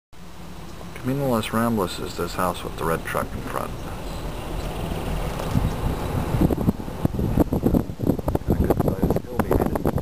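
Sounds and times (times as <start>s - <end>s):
wind buffeting microphone: 3.0s - 10.0s.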